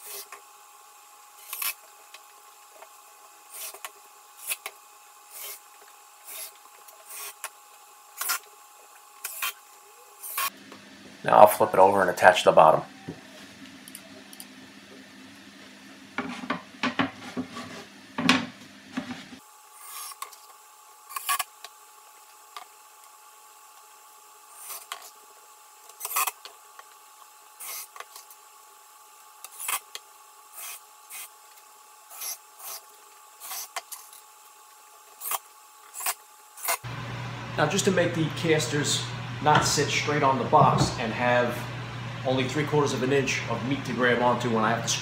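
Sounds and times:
drill driving screws into wood: 3.5s - 7.6s, 10.2s - 10.5s, 19.7s - 20.5s, 21.1s - 21.6s, 24.6s - 25.1s, 25.9s - 26.5s, 27.6s - 28.2s, 29.4s - 31.4s, 32.1s - 34.1s.

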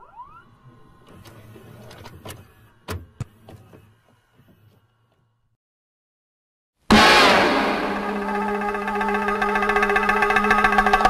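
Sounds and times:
low hum: 6.9s - 11.0s.

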